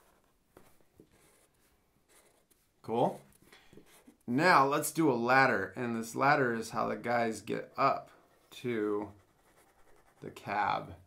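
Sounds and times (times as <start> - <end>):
marker scratching on paper: 0.0 - 4.2, 8.2 - 10.3.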